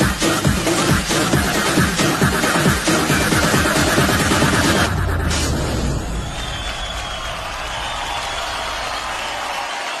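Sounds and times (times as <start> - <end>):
dance music: 0.0 - 10.0
audience applause: 6.1 - 10.0.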